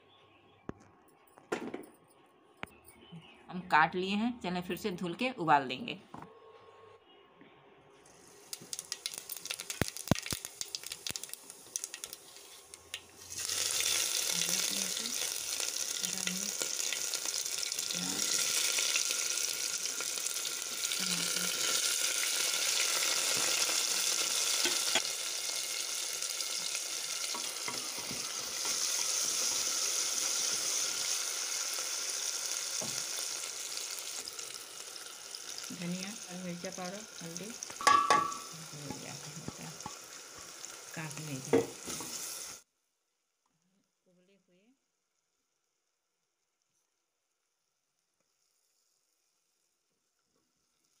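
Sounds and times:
onions frying in hot oil: 8.0 - 42.7, 47.3 - 51.0.

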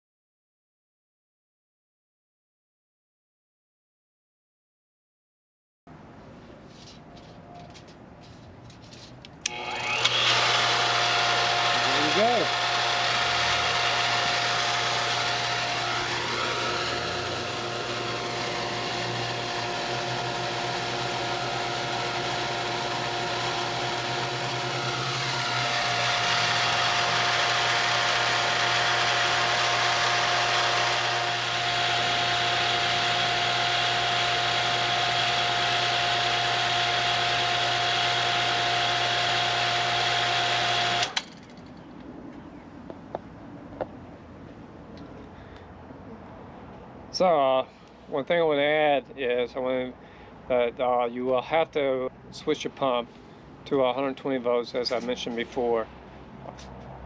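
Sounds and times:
water pump motor humming and whining: 9.4 - 41.2.

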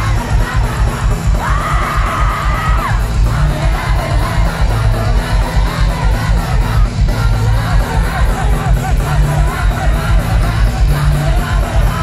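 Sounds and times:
crowd cheering and yelling: 0.0 - 12.0
live pop band: 0.0 - 12.0.

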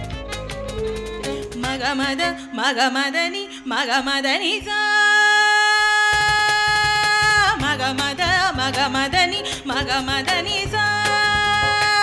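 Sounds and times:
bass: 0.0 - 1.8, 7.3 - 12.0
low percussion: 0.0 - 1.9.

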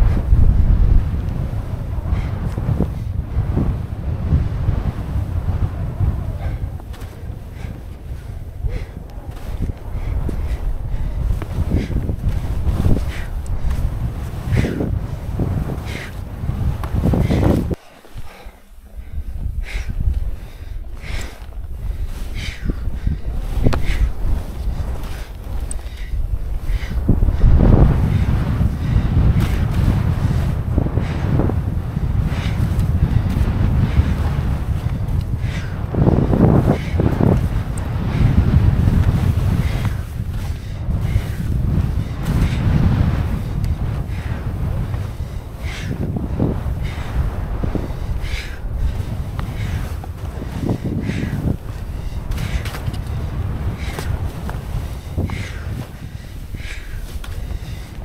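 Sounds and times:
skis scraping through snow: 0.0 - 58.0
wind buffeting microphone: 0.0 - 58.0.

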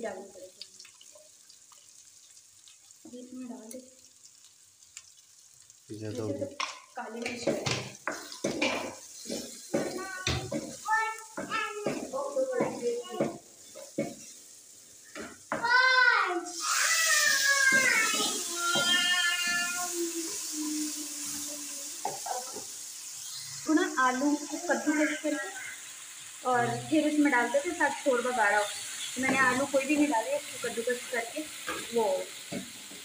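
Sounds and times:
hot pan sizzling loudly: 0.0 - 33.0
voices: 23.4 - 32.3.

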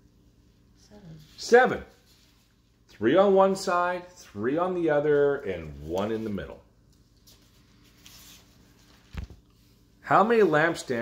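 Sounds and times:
faint room hiss: 0.0 - 11.0
soft scratchy rustle: 0.8 - 2.9, 5.0 - 11.0.

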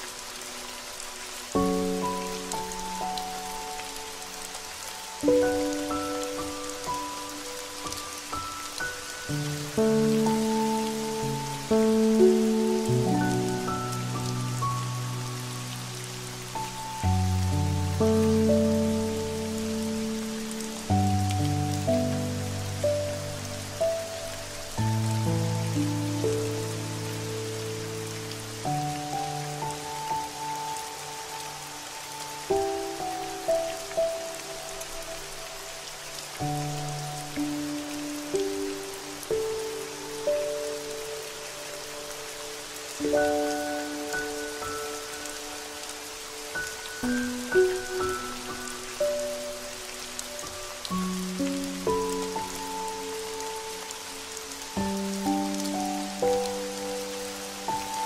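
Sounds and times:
rain pattering: 0.0 - 58.0.

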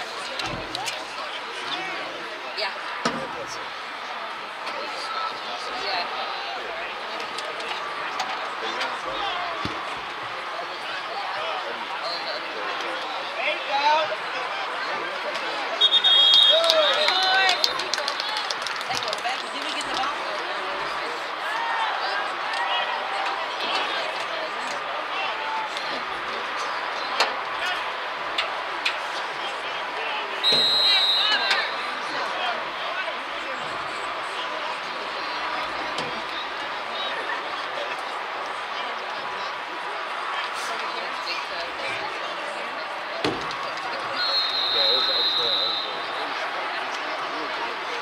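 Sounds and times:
spectators chattering and calling out: 0.0 - 48.0
high whistle blasts: 15.8 - 17.2, 30.4 - 31.9, 44.1 - 46.2.

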